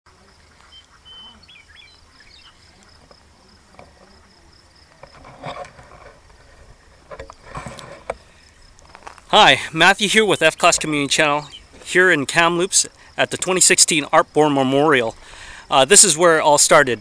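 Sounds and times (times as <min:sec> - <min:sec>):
rustles and bumps: 0:02.8 - 0:12.1.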